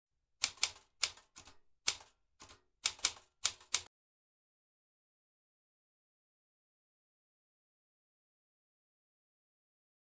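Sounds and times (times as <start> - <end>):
typewriter key strikes: 0.4 - 3.9.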